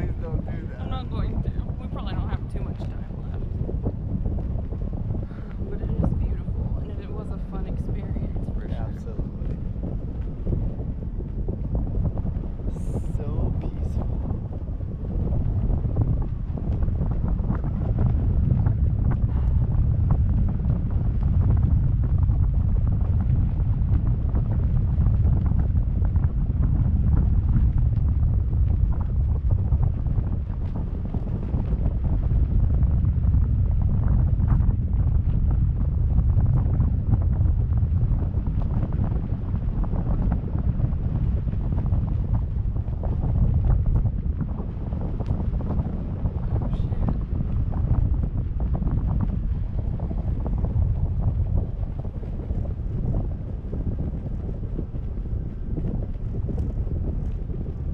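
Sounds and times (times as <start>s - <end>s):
wind buffeting microphone: 0.0s - 57.9s.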